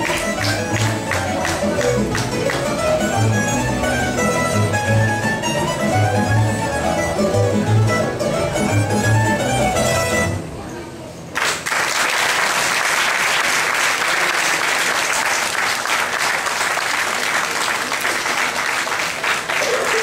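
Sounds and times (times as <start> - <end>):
plucked lutes playing dance tune: 0.0 - 10.4
plucked double bass line: 0.0 - 10.6.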